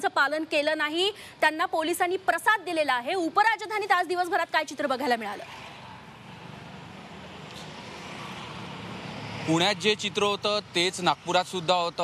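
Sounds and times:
street traffic hum: 0.0s - 12.0s.

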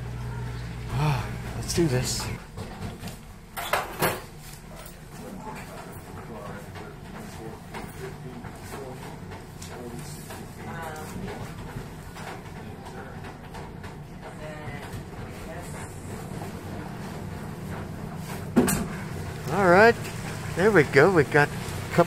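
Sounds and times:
room noise hum: 0.0s - 22.0s.

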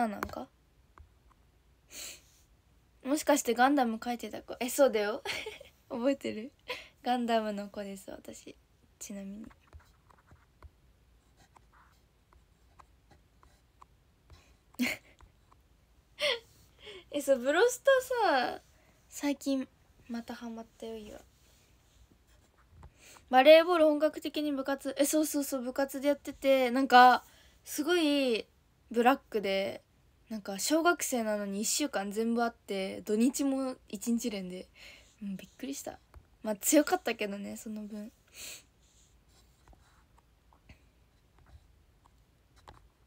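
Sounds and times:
person speaking: 0.0s - 0.5s, 3.0s - 10.4s, 16.2s - 21.3s, 22.3s - 38.1s.

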